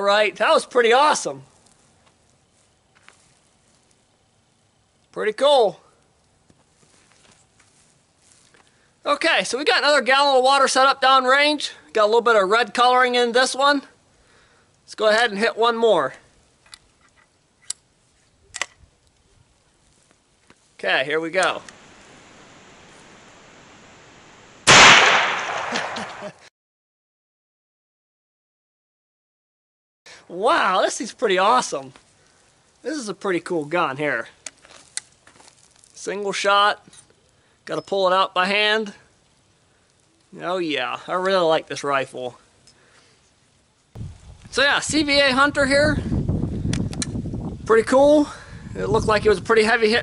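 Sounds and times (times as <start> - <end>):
rifle action click: 18.5 - 18.8
rifle shot echoing: 24.6 - 26.4.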